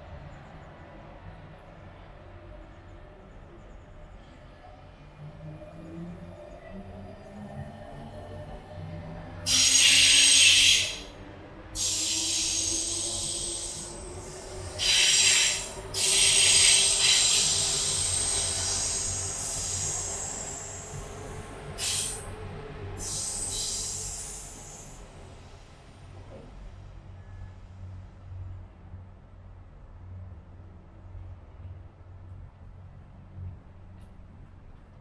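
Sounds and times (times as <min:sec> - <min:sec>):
high-pitched squealing hisses: 0:09.5 - 0:11.1, 0:11.8 - 0:21.0, 0:21.8 - 0:22.2, 0:23.0 - 0:25.0
train motor whine: 0:09.5 - 0:11.1, 0:11.8 - 0:22.3.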